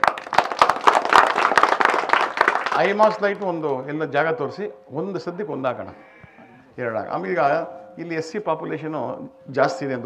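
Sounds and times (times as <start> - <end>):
man speaking into microphone: 2.8 - 6.0, 6.8 - 10.0.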